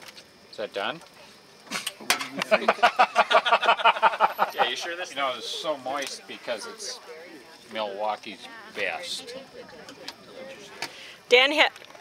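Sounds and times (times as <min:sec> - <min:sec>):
person laughing: 0:02.4 - 0:04.8.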